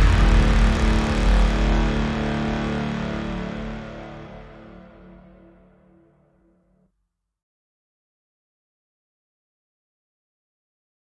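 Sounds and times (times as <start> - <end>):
deep sustained bass: 0.0 - 6.4
synth pad chords: 0.0 - 6.6.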